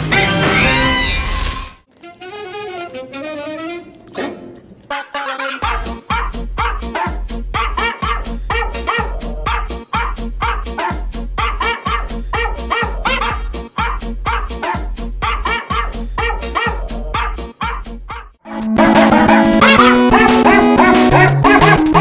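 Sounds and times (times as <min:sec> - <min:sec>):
sampled dog barks playing melody: 0:04.2 - 0:22.0
pulsing bass line: 0:16.9 - 0:22.0.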